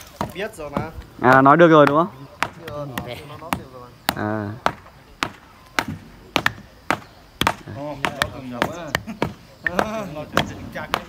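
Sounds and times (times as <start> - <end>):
voices talking: 0.0 - 11.0
wooden rammers pounding earth: 0.0 - 11.0.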